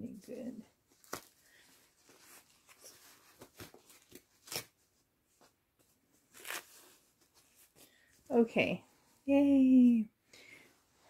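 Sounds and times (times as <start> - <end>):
diaper crinkling and rustling: 0.9 - 4.7.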